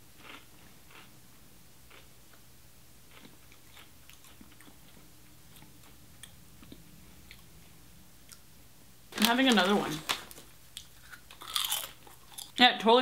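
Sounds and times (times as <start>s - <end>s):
potato chip crunching: 0.2s - 1.1s, 9.2s - 12.6s.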